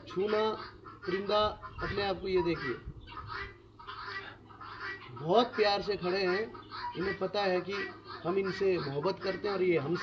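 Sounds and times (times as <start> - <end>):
faint bird calls: 0.0 - 10.0.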